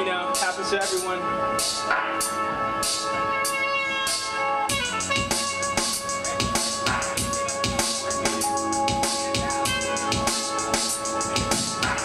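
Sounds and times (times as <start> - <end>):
hip-hop beat over sound system: 0.0 - 12.0.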